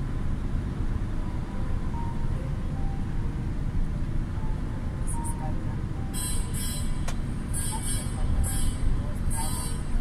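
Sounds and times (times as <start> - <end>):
truck engine and road rumble: 0.0 - 10.0.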